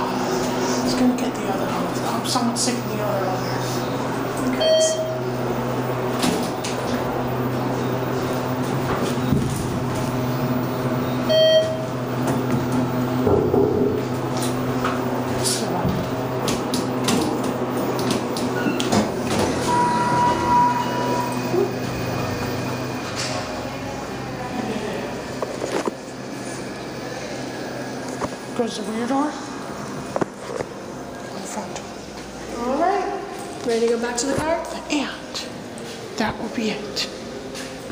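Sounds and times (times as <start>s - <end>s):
elevator low hum: 0.0s - 37.9s
elevator chime: 4.5s - 5.5s, 10.2s - 12.2s, 17.8s - 23.2s
held single tone: 19.6s - 21.7s.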